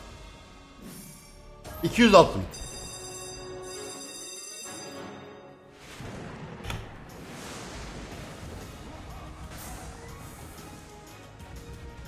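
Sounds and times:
background game music: 0.0 - 12.0
held chime tones: 1.7 - 5.7.

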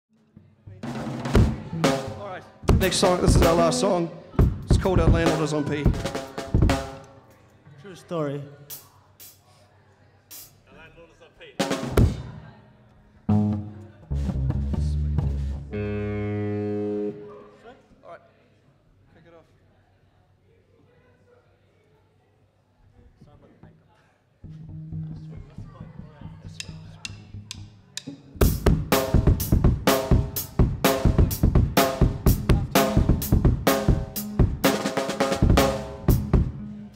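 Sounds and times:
drum kit hits: 0.8 - 7.0, 28.4 - 36.7
low bass guitar notes: 1.6 - 5.3, 13.3 - 17.4, 24.4 - 27.8, 35.3 - 36.9
drumsticks clicking together: 26.6 - 28.2.

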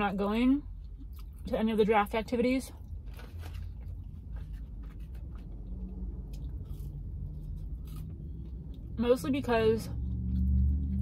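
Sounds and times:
low steady hum: 0.0 - 11.0
chewing crunchy fries: 0.8 - 1.5, 2.8 - 9.0, 10.0 - 11.0.

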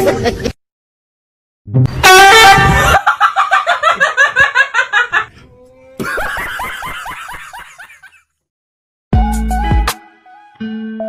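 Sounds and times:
person snickering laugh: 6.0 - 8.2.

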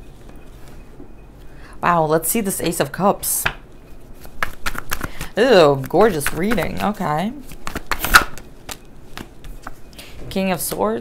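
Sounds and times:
cards being shuffled: 4.2 - 9.8.

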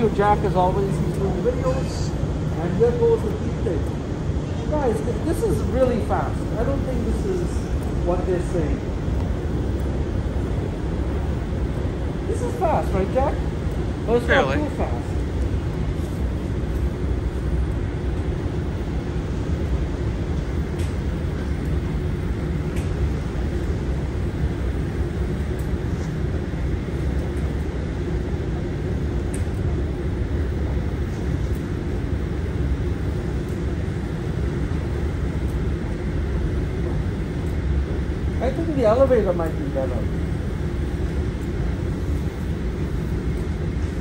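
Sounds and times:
escalator rumble and hum: 0.0 - 44.0.

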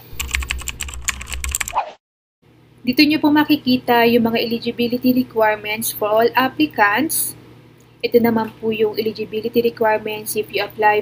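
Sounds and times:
computer keyboard typing: 0.0 - 1.8
low hum: 0.0 - 1.8.

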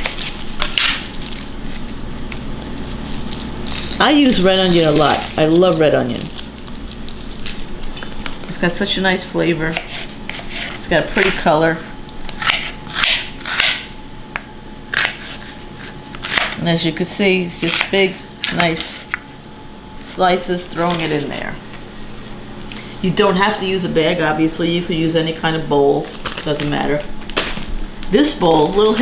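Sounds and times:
low room hum: 0.0 - 29.0
knife slicing onion on board: 9.7 - 11.4, 12.3 - 16.6.

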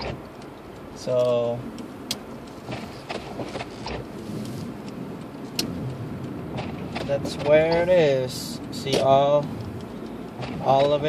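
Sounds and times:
car cabin running noise: 0.0 - 11.0
sharp clicks: 0.0 - 11.0.

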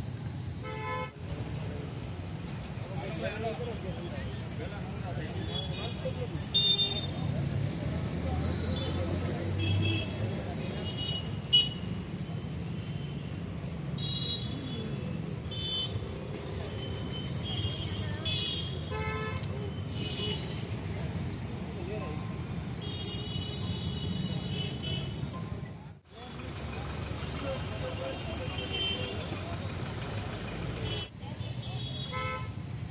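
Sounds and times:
passing vehicles rumbling: 0.0 - 32.9.

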